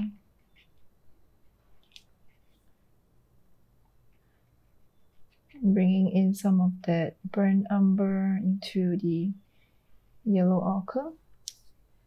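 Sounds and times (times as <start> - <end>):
person speaking: 0.0 - 0.2, 5.5 - 9.4.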